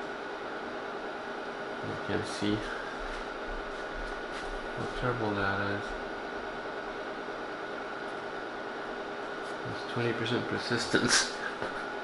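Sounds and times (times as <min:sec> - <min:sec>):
electronic equipment hiss and hum: 0:00.0 - 0:12.0.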